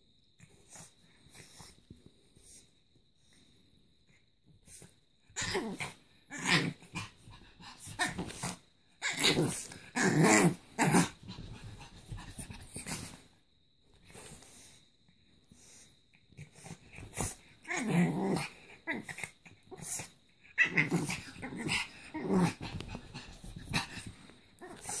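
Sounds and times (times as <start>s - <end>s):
dog growling and breathing: 0.4s - 3.6s, 4.6s - 13.4s, 15.4s - 25.0s.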